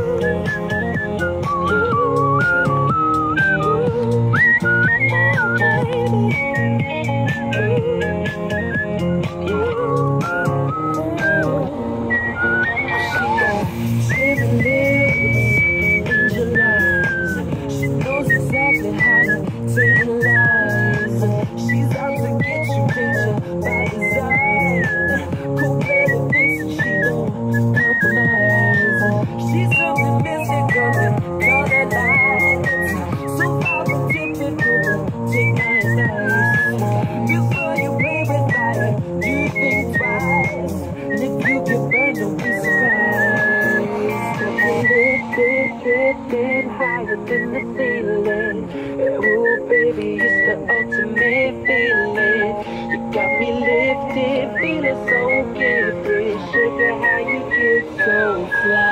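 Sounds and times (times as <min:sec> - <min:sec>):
recorded pop song: 0:00.0 - 0:58.9
woman whistling a melody: 0:00.0 - 0:58.9.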